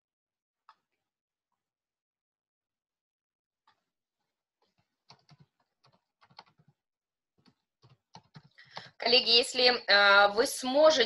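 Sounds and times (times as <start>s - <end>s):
typing on computer keyboard: 4.7s - 6.8s, 7.4s - 8.9s.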